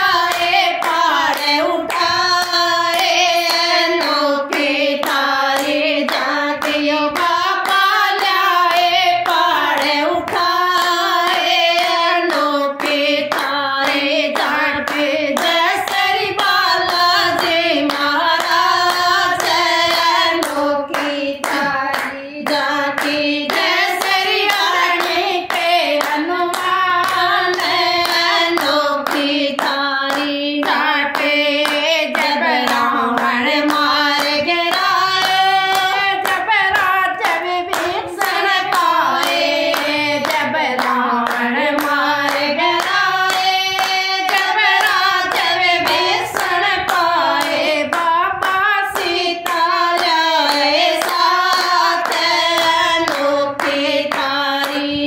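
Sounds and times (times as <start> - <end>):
rhythmic hand clapping: 0.0 - 55.0
women singing devotional song: 0.0 - 55.0.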